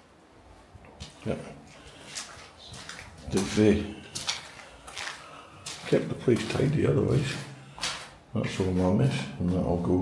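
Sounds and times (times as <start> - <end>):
scuffs on gritty concrete floor: 1.0 - 10.0
man speaking: 1.1 - 1.7, 3.2 - 4.2, 5.7 - 7.6, 8.3 - 10.0.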